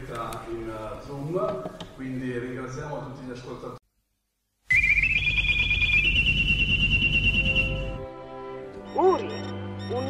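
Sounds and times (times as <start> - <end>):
high radio tuning whistle: 4.7 - 8.1.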